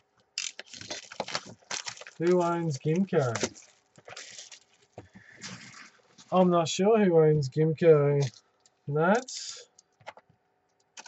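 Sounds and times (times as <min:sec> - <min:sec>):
packaging tearing and crackling: 0:00.3 - 0:06.4.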